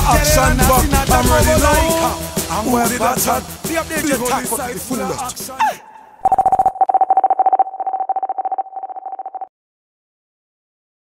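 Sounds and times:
pulsing electronic beep: 6.2s - 9.5s.

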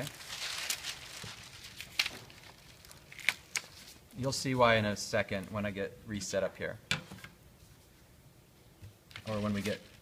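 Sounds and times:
paper rustling: 0.0s - 4.0s, 9.1s - 10.0s.

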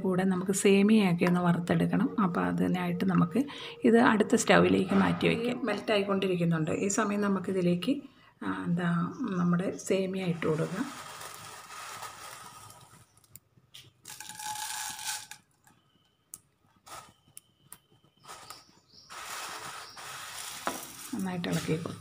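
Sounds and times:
noodles sizzling in hot fat: 10.4s - 13.2s, 18.2s - 22.0s.

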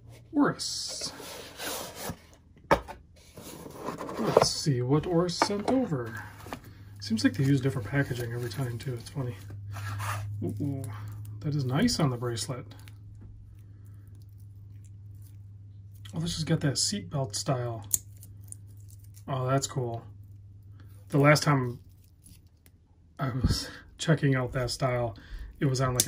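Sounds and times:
soft scraping rustle: 3.2s - 4.7s
low hum: 3.2s - 26.0s.

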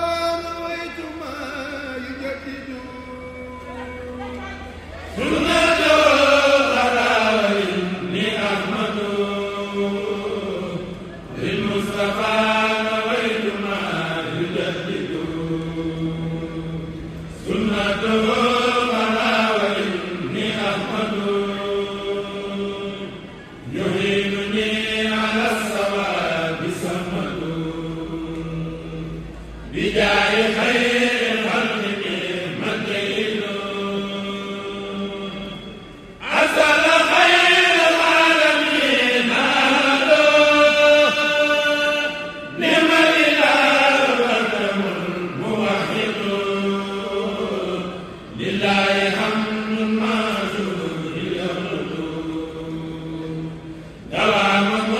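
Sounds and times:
men chanting together: 5.1s - 54.9s.

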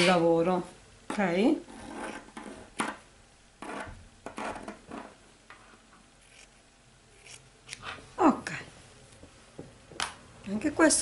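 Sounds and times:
scissors cutting fabric: 7.2s - 7.8s.

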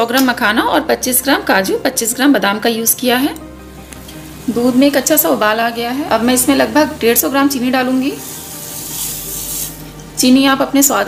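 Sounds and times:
sugar pouring into liquid: 8.1s - 9.9s.

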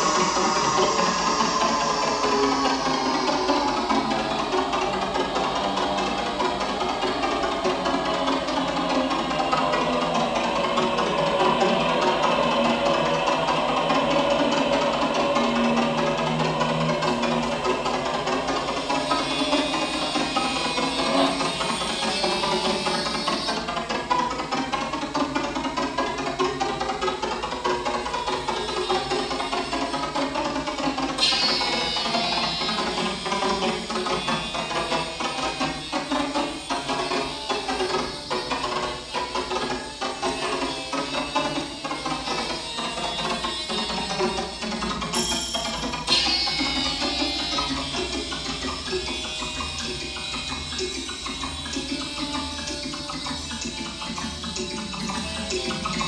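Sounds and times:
electronically processed music: 0.0s - 56.0s
bright high ringing: 45.1s - 50.2s.

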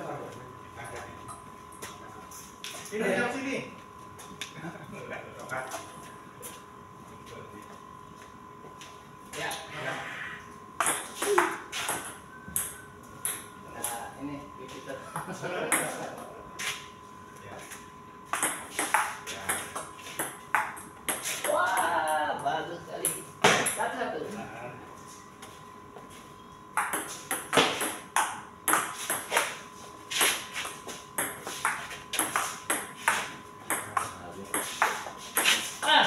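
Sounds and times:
people talking: 13.7s - 16.4s, 21.5s - 23.2s, 33.8s - 34.7s
table tennis ball tapping: 18.3s - 21.9s, 26.8s - 29.6s, 31.2s - 35.6s.

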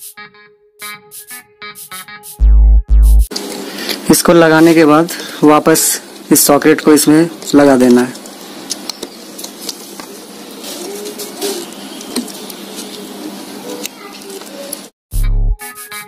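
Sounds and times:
electronic keyboard music: 0.0s - 3.3s, 15.1s - 16.0s
loud low boom: 2.4s - 3.3s
steady background noise: 3.3s - 14.9s.

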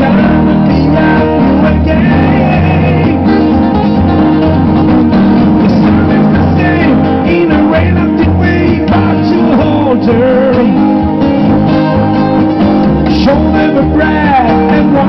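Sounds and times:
person singing: 0.0s - 3.5s, 5.6s - 11.0s, 13.0s - 15.0s
acoustic guitars: 0.0s - 15.0s
plucked double bass: 0.0s - 15.0s
sliding lead guitar lines: 0.0s - 15.0s.

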